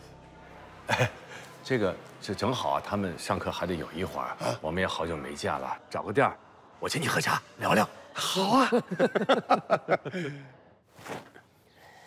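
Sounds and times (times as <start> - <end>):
man laughing: 8.5 - 10.5.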